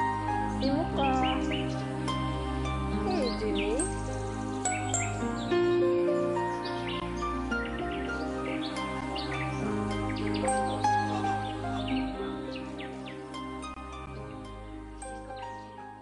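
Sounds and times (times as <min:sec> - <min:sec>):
birdsong chirping: 0:00.0 - 0:16.0
calm instrumental music: 0:00.0 - 0:16.0.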